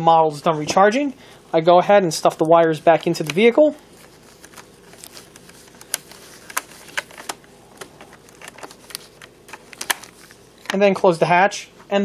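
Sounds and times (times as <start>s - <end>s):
plastic clicks and rustles: 3.1s - 10.8s.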